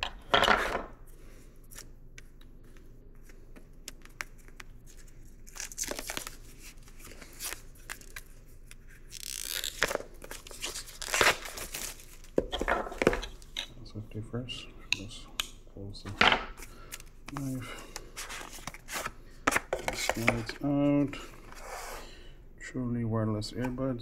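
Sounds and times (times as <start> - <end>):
wrapping crinkling: 3.3 - 12.4.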